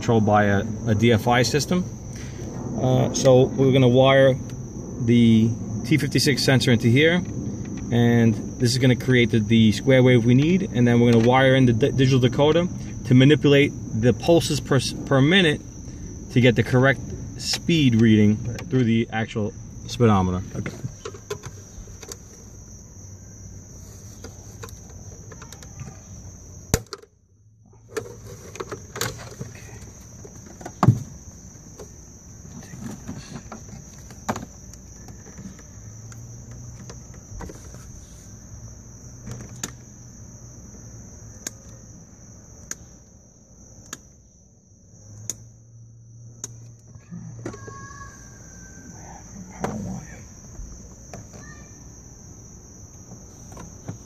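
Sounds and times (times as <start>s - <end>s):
low hum: 0.0s - 25.0s
crickets droning: 0.0s - 54.0s
clicks of wires and connector: 43.8s - 44.1s.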